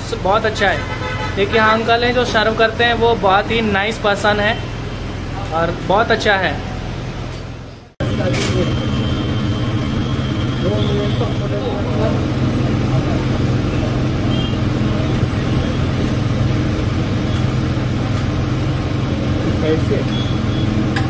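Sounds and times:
fans and air conditioning hum: 0.0 - 21.0.

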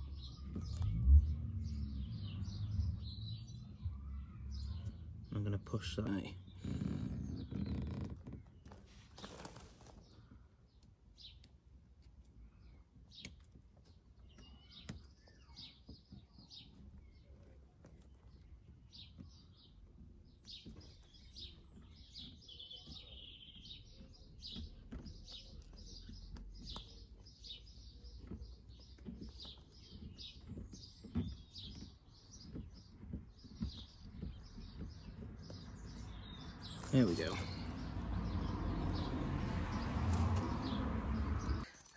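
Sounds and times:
low background rumble: 0.0 - 8.8
birds chirping: 0.0 - 41.9.

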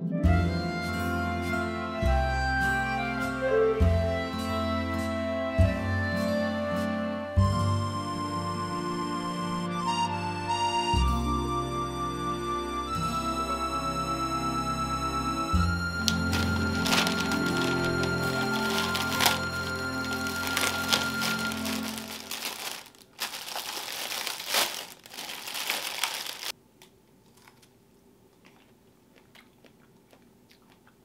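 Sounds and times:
background music: 0.0 - 24.8
plastic film crinkling and tearing: 16.1 - 26.6.

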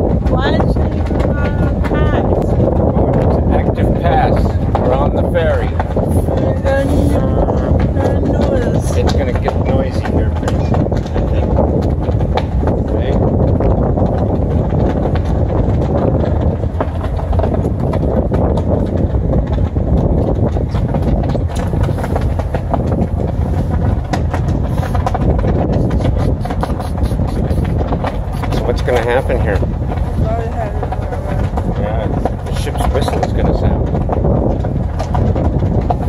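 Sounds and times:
ferry engine rumble: 0.0 - 36.0
wind buffeting microphone: 0.0 - 36.0.

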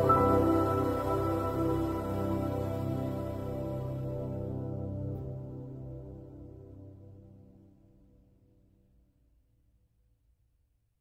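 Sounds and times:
soft ambient music: 0.0 - 8.1.

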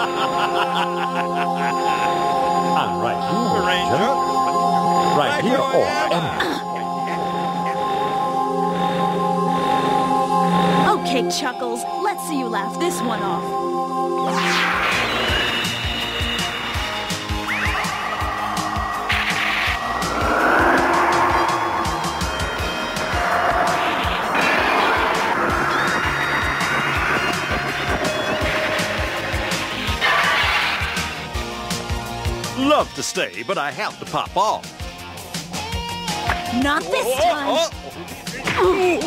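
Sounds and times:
sweeping pitch glides: 10.1 - 31.6
action music: 12.8 - 33.0
sharp hits: 14.3 - 31.9.

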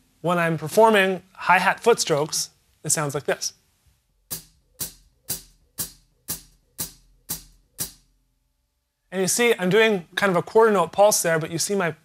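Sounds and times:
hi-hat pedal chicks: 4.3 - 8.1.

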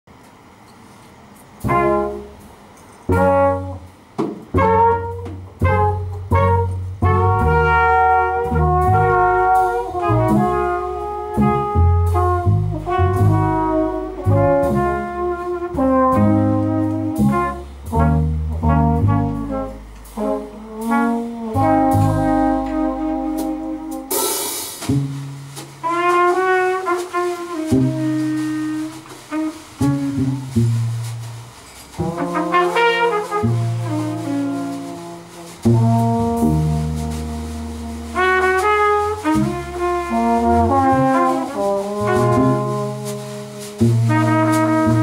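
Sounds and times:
small jazz group playing: 0.1 - 45.0.

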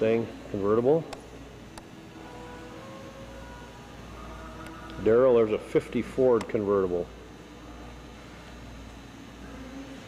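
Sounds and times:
faint background music: 0.0 - 10.0
low hum and hiss: 0.0 - 10.0.

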